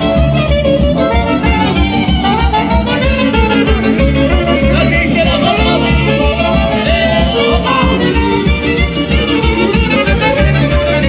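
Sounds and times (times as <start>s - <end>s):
dance band music over speakers: 0.0s - 11.0s.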